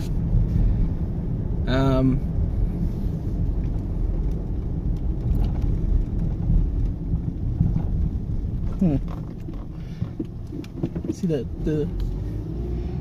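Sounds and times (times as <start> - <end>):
car road and engine rumble: 0.0 - 13.0.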